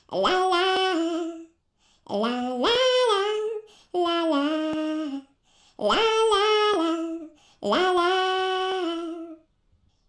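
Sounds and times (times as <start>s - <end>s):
high voice singing: 0.0s - 9.5s.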